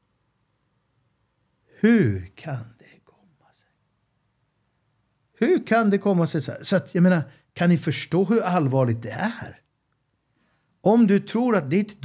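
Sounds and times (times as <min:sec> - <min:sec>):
faint man's voice: 0:01.7 - 0:03.7.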